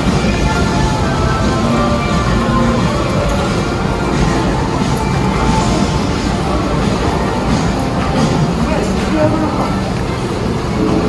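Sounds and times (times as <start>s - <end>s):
people's voices: 0.0s - 11.0s
shopping arcade background noise: 0.0s - 11.0s.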